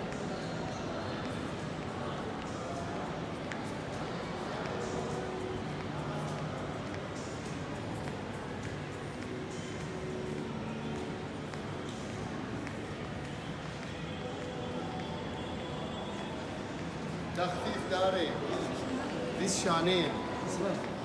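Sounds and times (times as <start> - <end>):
faint background music: 0.0 - 21.0
murmur of shoppers' voices: 0.0 - 21.0.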